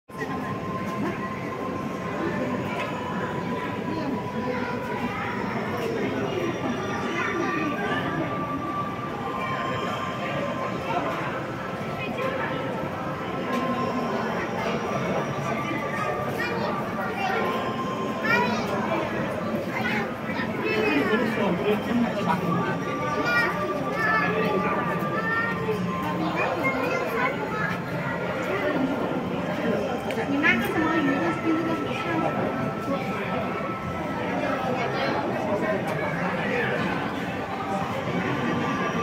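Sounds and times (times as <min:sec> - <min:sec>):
background chatter: 0:00.1 - 0:39.0
distant voices murmuring: 0:00.1 - 0:39.0.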